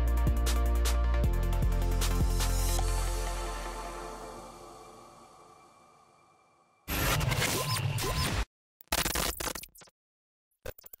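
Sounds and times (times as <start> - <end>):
distorted digital glitch noise: 6.9 - 9.9.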